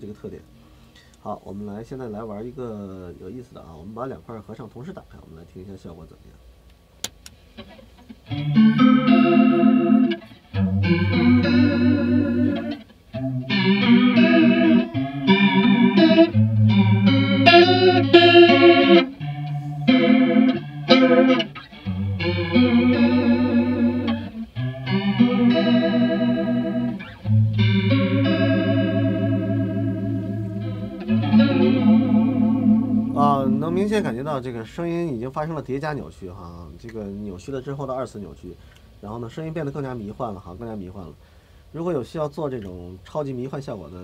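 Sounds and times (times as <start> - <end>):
wavering electric guitar chords: 7.6 - 34.2.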